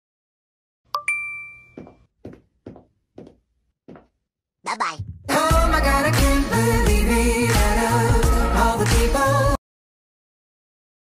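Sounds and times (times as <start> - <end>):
bell-like ding: 1.0 - 1.8
soft steady knocks: 1.8 - 4.1.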